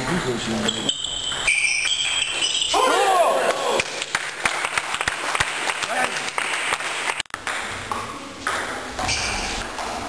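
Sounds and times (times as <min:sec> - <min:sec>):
table tennis ball pinging: 0:00.0 - 0:02.7, 0:07.4 - 0:10.0.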